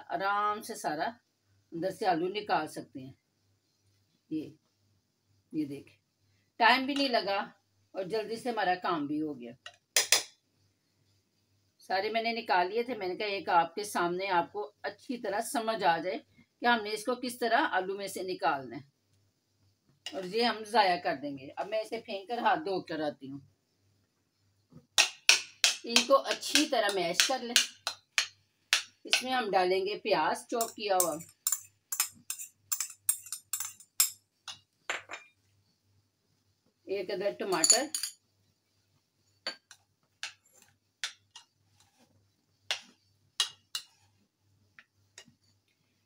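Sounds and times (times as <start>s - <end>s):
metal spoon clinking against bowl: 30.6s - 35.3s, 37.5s - 38.2s.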